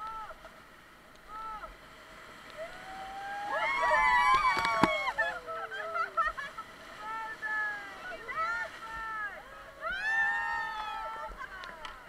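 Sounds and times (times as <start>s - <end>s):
people whooping and yelling: 2.5s - 12.0s.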